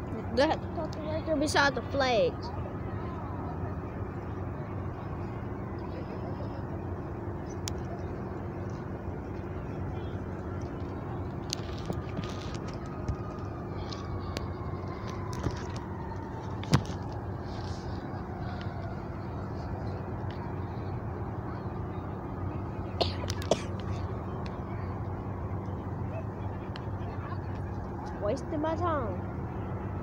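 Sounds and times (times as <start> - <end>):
distant traffic hum: 0.0 - 30.0.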